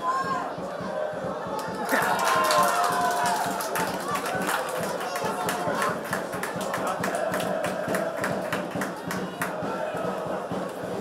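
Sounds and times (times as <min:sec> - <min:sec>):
crowd murmur and voices: 0:00.0 - 0:11.0.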